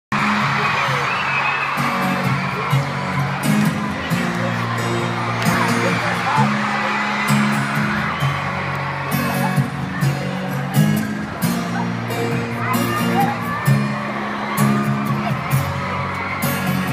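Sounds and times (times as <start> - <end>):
crowd screaming and cheering: 0.1 - 16.9
live pop band music: 0.1 - 16.9.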